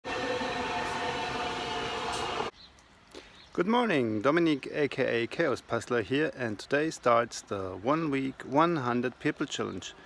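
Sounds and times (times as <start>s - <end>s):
electric train passing: 0.0s - 2.5s
train whining tones: 0.0s - 2.5s.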